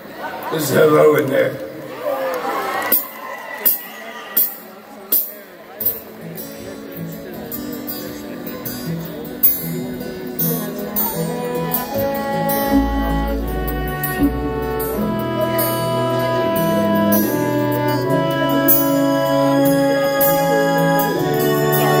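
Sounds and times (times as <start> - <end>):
acoustic guitars: 5.1 - 22.0
symphony orchestra: 11.0 - 22.0
upright bass: 11.4 - 22.0.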